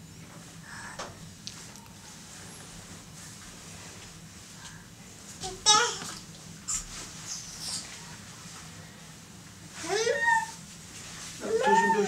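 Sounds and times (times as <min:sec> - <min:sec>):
baby squealing and babbling: 0:09.9 - 0:10.6.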